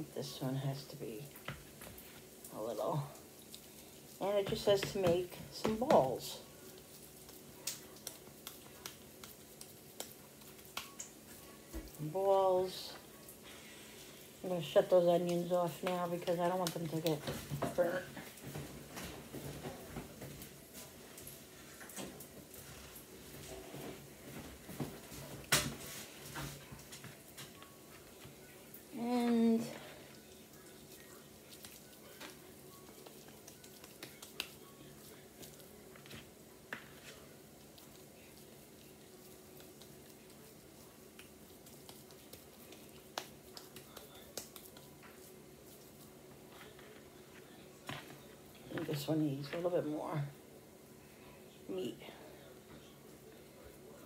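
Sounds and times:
hands patting ground beef: 0:03.5 - 0:11.2, 0:30.7 - 0:49.1.

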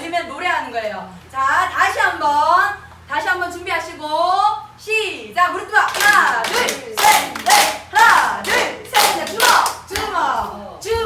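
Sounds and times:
hands clapping: 0:05.9 - 0:10.5
women chanting: 0:05.9 - 0:11.0.

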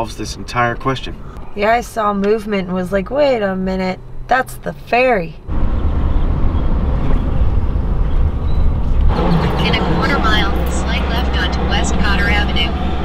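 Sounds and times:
voices talking: 0:00.0 - 0:05.4, 0:09.1 - 0:13.0
car engine and tyres rumbling: 0:00.0 - 0:13.0.

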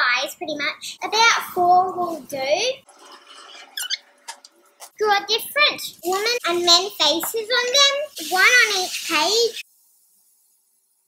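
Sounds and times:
high squeak: 0:03.5 - 0:04.1.

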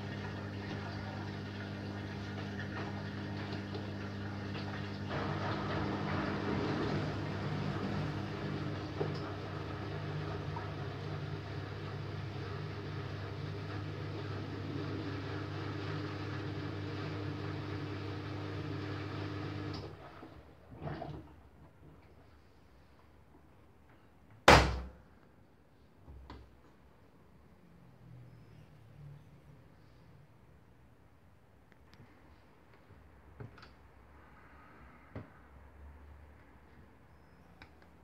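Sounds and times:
washing machine humming: 0:00.0 - 0:22.3.

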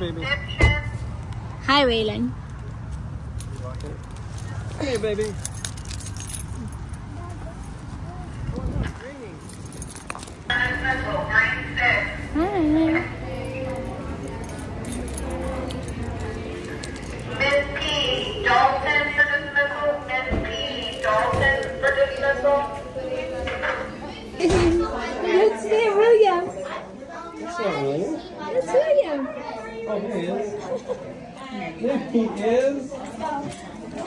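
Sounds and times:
faint voices: 0:00.0 - 0:34.0.

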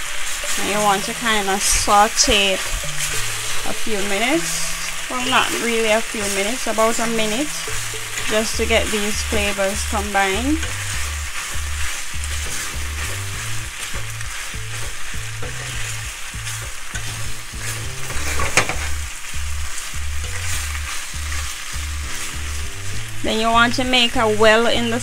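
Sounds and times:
spatula scraping a pan: 0:00.0 - 0:23.3
pasta sizzling in oil: 0:00.0 - 0:25.0.

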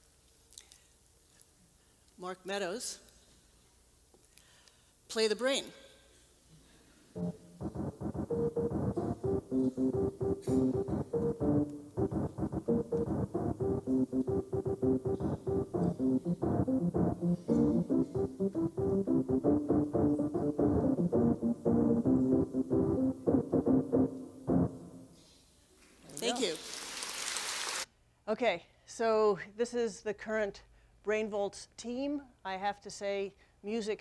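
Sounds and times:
keyboard playing short pitched notes: 0:07.2 - 0:25.2.

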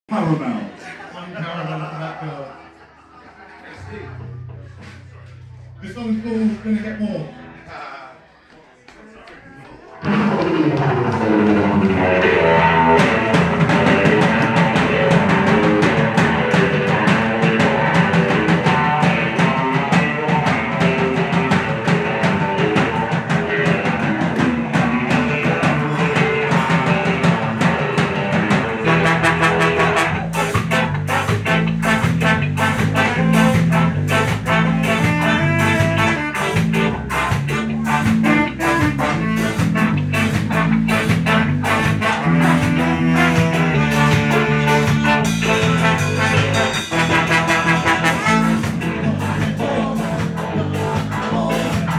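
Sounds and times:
ska band playing: 0:03.8 - 0:07.6, 0:09.9 - 0:51.9.

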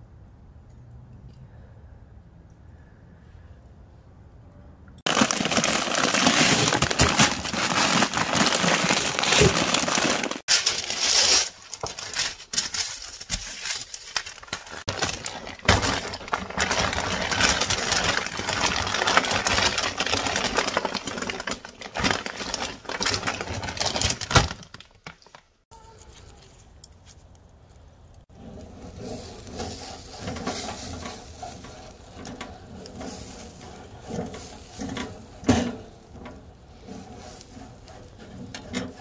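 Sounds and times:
frozen fries clattering onto baking sheet: 0:05.1 - 0:25.4
plastic bag crinkling: 0:05.1 - 0:25.6, 0:28.9 - 0:35.3
scraping a grill grate: 0:28.3 - 0:39.0.

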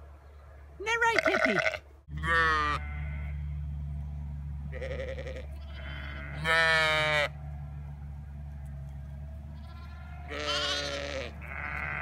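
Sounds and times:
sheep bleating: 0:01.0 - 0:03.4, 0:04.7 - 0:07.4, 0:09.6 - 0:12.0
steady low hum: 0:01.6 - 0:12.0.

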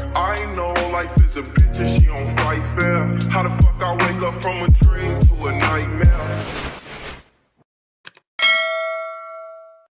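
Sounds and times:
rap track: 0:00.0 - 0:06.4
bright bell ding: 0:08.4 - 0:09.9.

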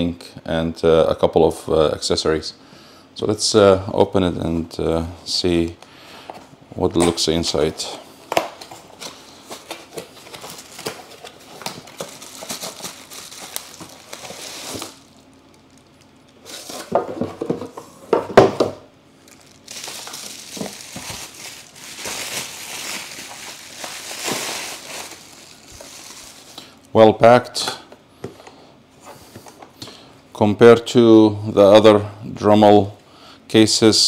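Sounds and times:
bubble wrap crinkling: 0:08.6 - 0:16.9, 0:19.2 - 0:26.8.

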